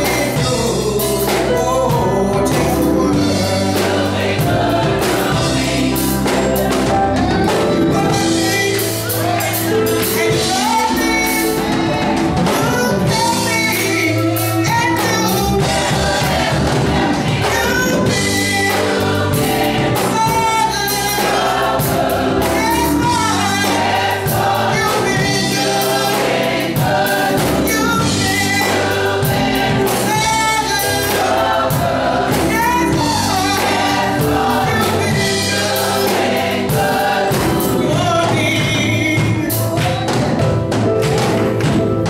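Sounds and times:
drum kit: 0.0 - 42.0
gospel choir singing: 0.0 - 42.0.

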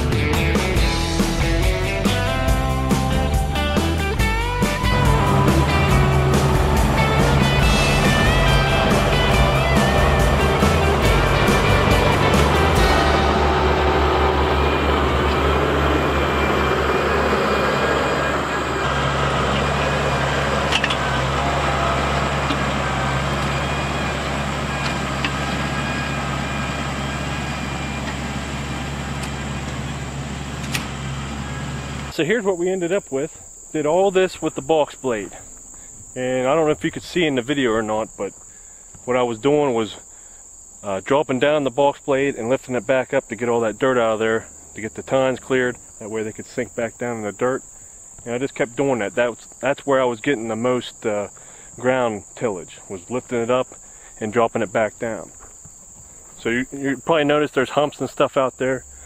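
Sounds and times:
background music with a beat: 0.0 - 13.9
tractor diesel engine running: 0.0 - 32.9.

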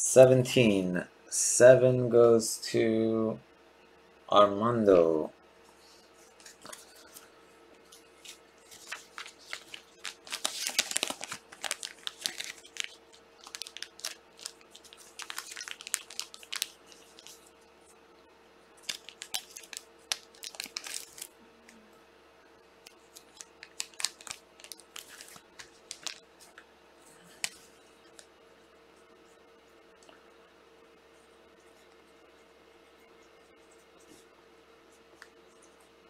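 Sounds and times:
plastic sleeves crinkling: 5.9 - 17.6, 18.8 - 21.4, 22.8 - 28.3.

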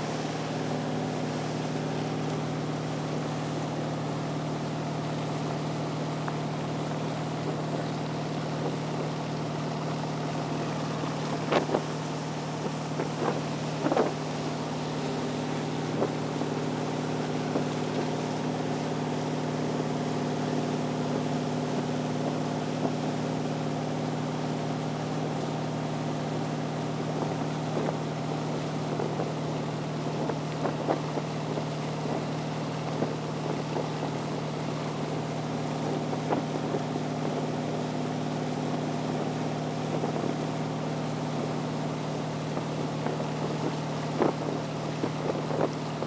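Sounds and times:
motorboat engine running: 0.0 - 46.0
rushing wake water: 0.0 - 46.0
wind on microphone: 10.7 - 18.1, 28.9 - 34.4, 42.5 - 46.0.

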